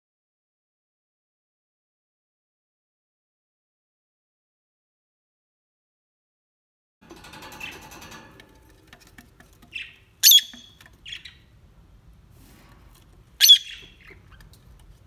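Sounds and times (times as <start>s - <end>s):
soft bird chatter: 7.2s - 11.7s, 12.4s - 15.0s
bird chirps: 9.7s - 11.5s, 13.4s - 14.5s
lovebirds shrieking: 9.8s - 11.3s, 13.4s - 14.2s.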